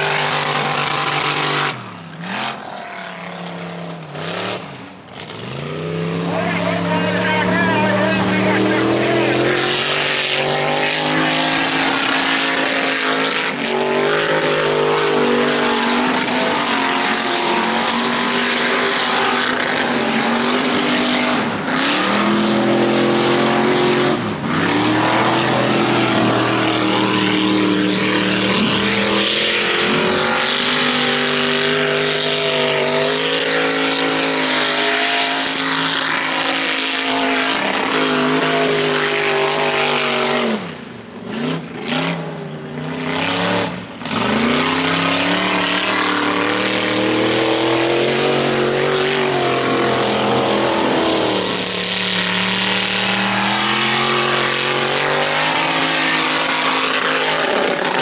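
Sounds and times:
buggy engine revving hard: 0.0 - 58.0.

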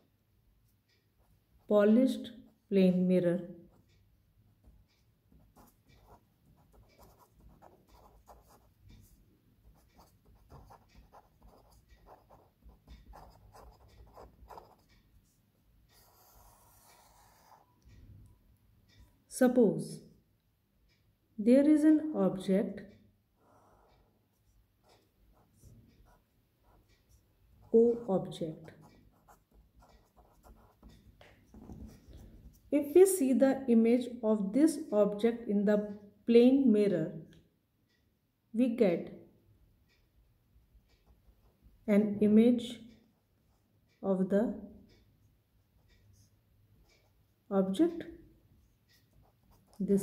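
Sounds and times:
pen scratching on paper: 5.4 - 17.8, 23.4 - 32.6, 48.6 - 50.0.

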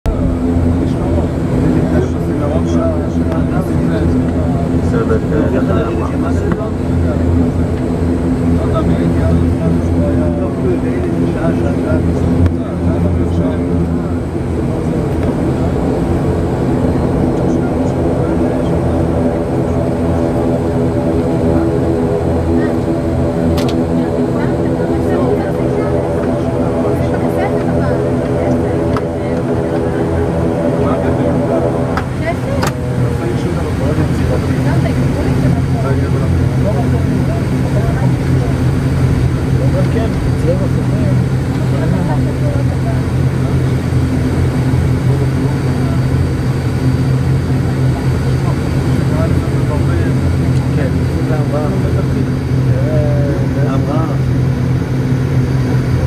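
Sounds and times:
airliner engines droning: 0.0 - 56.0.

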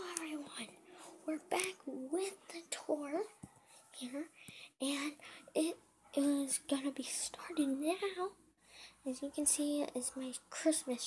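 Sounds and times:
boy talking: 0.0 - 8.4, 9.0 - 11.0.

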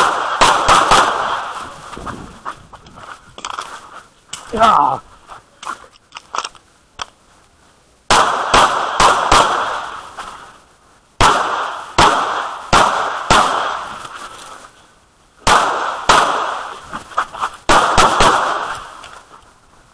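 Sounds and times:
pistol shots with ringing echo: 0.0 - 1.6, 8.1 - 10.0, 11.2 - 13.9, 15.4 - 16.8, 17.7 - 19.0.

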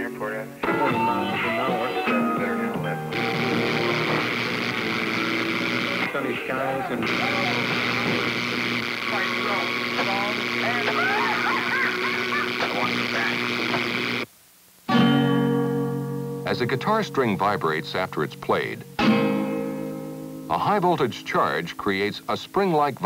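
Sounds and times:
garbled broadcast voice and music: 0.0 - 14.3, 16.3 - 23.0
static hiss and buzz: 0.0 - 23.0.

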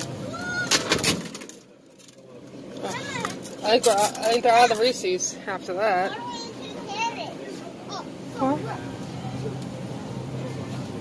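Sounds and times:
young child's voice: 2.8 - 3.4, 6.0 - 8.9
steady low hum: 4.7 - 11.0.

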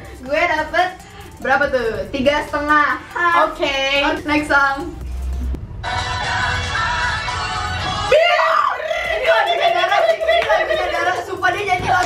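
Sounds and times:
woman exclaiming excitedly: 8.1 - 12.0.

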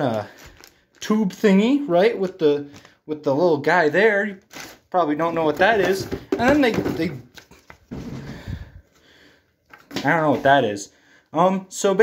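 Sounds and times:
cardboard box handling knocks: 5.6 - 7.2.

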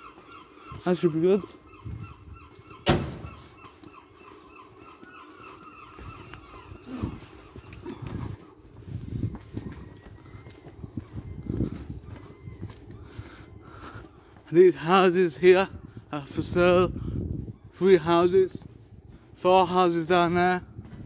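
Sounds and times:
gulls calling: 0.0 - 8.8
footsteps on pavement: 0.0 - 15.8, 17.3 - 21.0.

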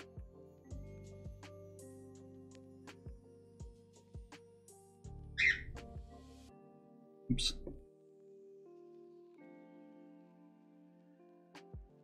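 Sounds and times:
music with soft low beat: 0.0 - 6.5, 7.3 - 7.8, 11.6 - 12.0.

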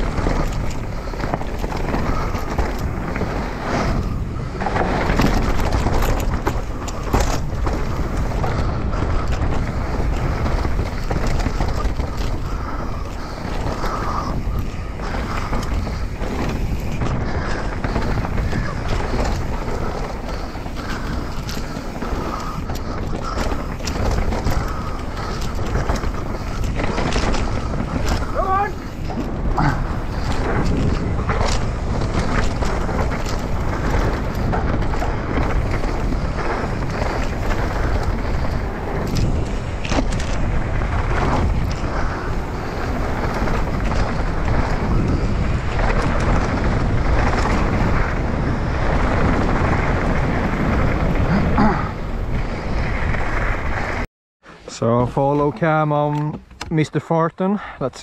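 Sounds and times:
bike rattling and knocking: 0.0 - 54.1
wind rush on microphone: 0.0 - 56.7
tyres on loose dirt: 0.0 - 57.9.

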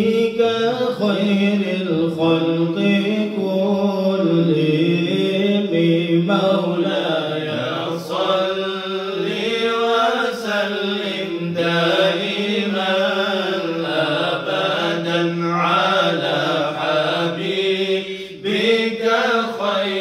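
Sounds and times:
men chanting: 0.0 - 20.0.

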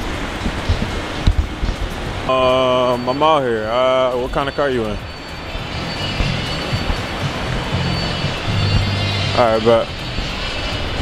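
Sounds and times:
traffic and aircraft roar: 0.0 - 11.0
low bass music: 4.1 - 11.0.

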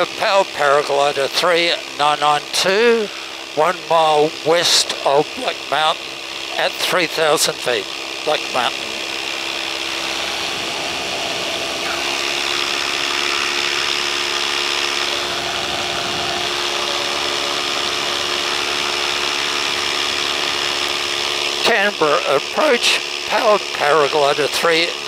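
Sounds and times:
paramotor engine humming: 0.0 - 25.0.

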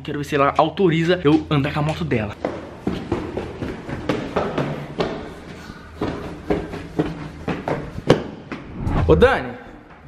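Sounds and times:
footsteps of shoes on floor: 0.0 - 8.8.

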